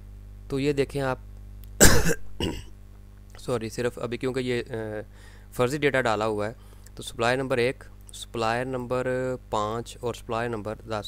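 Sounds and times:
man coughing: 0:01.8 - 0:02.8.

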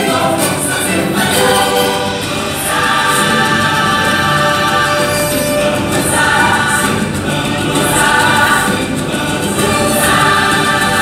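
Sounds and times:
choir singing: 0:00.0 - 0:11.0
stage show music: 0:00.0 - 0:11.0.

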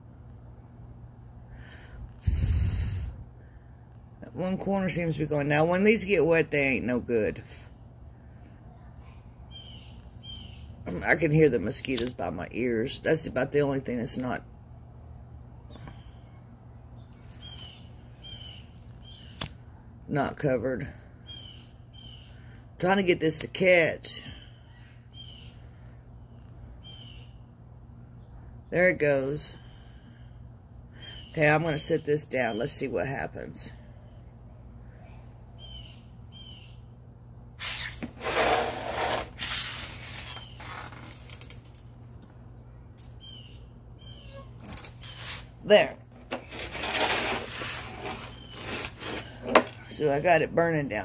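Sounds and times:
steady low hum: 0:00.0 - 0:51.0
high bird chirps: 0:09.5 - 0:10.7, 0:17.0 - 0:19.5, 0:35.6 - 0:36.9, 0:43.2 - 0:45.4.

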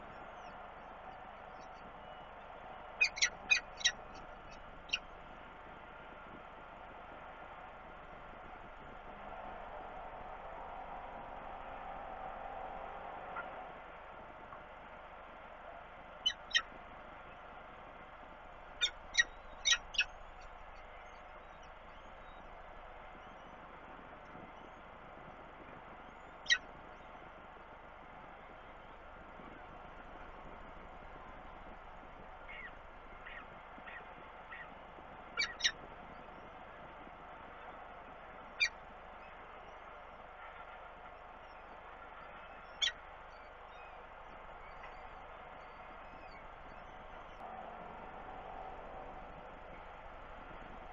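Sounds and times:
faint steady hiss: 0:00.0 - 0:50.9
falcons calling: 0:02.0 - 0:05.1, 0:16.2 - 0:16.7, 0:18.8 - 0:21.9, 0:32.4 - 0:35.8, 0:38.5 - 0:38.8
falcon chick cheeping: 0:03.0 - 0:04.0, 0:16.3 - 0:16.6, 0:35.4 - 0:35.8.

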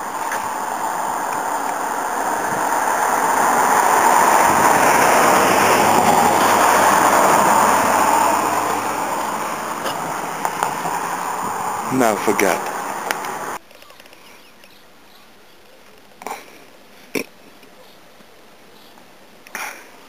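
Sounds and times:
vehicle passing by: 0:00.0 - 0:13.6.

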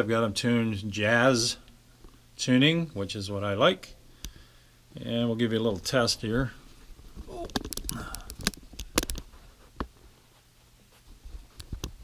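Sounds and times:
camera handling knocks and rustles: 0:07.5 - 0:10.0.

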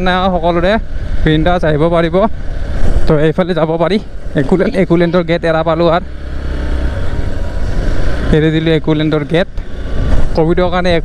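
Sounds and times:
motorcycle rumbling: 0:00.0 - 0:11.0.

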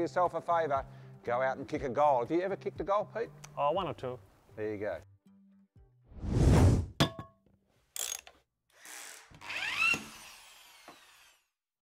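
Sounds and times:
whoosh: 0:06.1 - 0:07.0.

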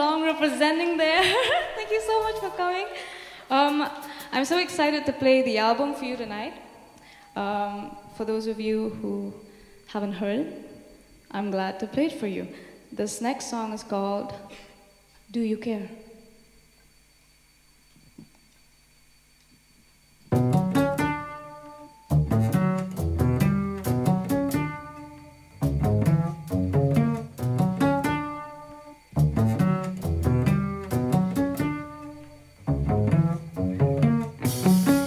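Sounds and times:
drums and cymbals: 0:20.3 - 0:21.4, 0:22.0 - 0:28.4, 0:29.0 - 0:35.0
electric guitar plucked notes: 0:20.4 - 0:35.0
electric bass: 0:22.1 - 0:28.3, 0:29.1 - 0:35.0.

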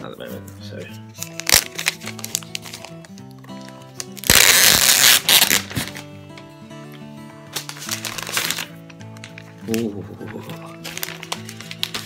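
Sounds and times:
background music: 0:00.0 - 0:12.0
plastic wrapping rustling: 0:01.1 - 0:06.2, 0:06.9 - 0:12.0
plastic crinkles: 0:01.2 - 0:06.0, 0:07.5 - 0:12.0.

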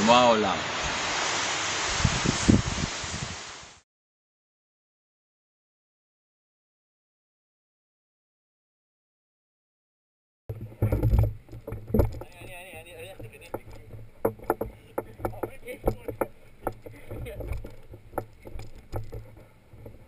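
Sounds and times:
wind rumbling on microphone: 0:00.7 - 0:03.8, 0:10.5 - 0:20.0
sharp knocks and taps: 0:10.5 - 0:20.0.

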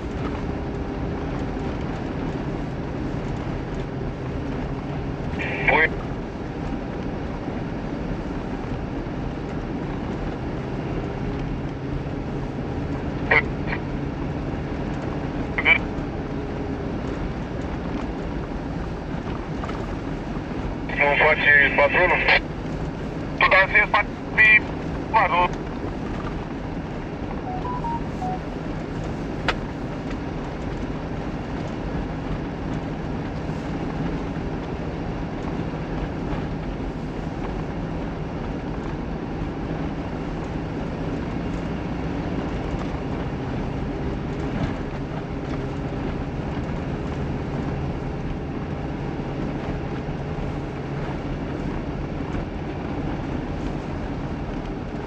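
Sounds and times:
car engine running: 0:00.0 - 0:55.0.

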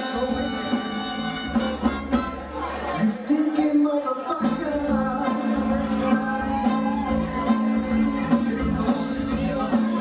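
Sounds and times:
rock band playing: 0:00.0 - 0:02.7, 0:04.2 - 0:10.0.

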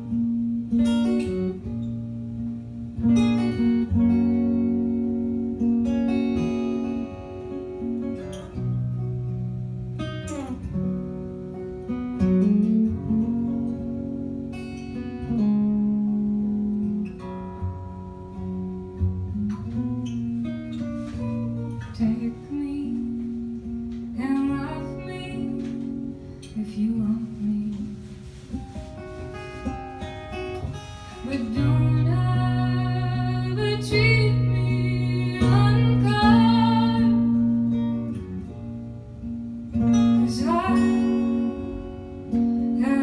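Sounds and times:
fingerstyle acoustic guitar: 0:00.0 - 0:43.0.

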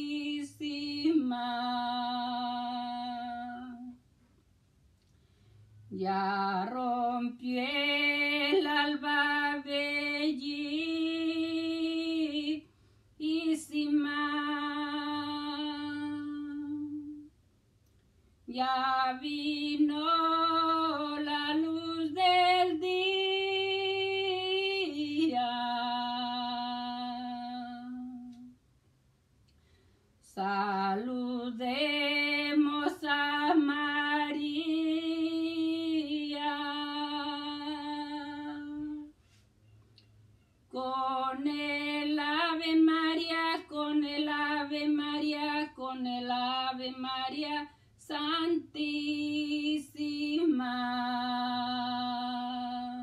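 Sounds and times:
woman singing a hymn: 0:00.0 - 0:04.0, 0:05.9 - 0:17.3, 0:18.5 - 0:28.6, 0:30.2 - 0:39.2, 0:40.7 - 0:53.0
breaths: 0:05.1 - 0:05.9, 0:12.6 - 0:13.2, 0:29.5 - 0:30.2.

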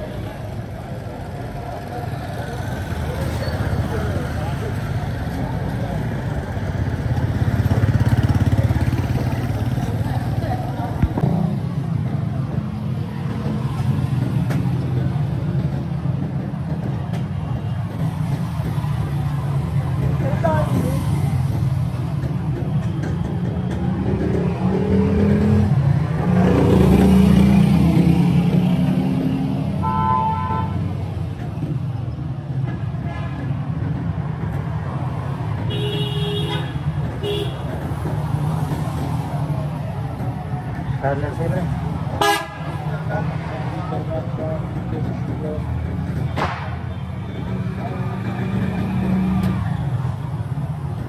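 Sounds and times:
motorcycle engines passing: 0:00.0 - 0:51.0.

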